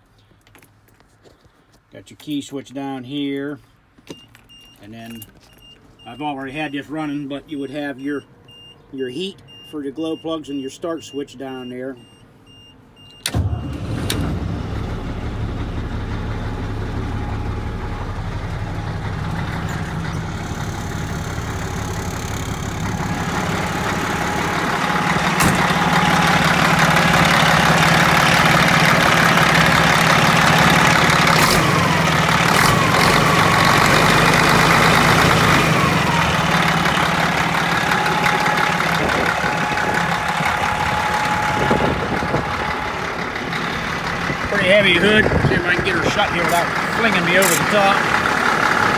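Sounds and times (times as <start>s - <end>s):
diesel truck engine idling: 6.0s - 48.9s.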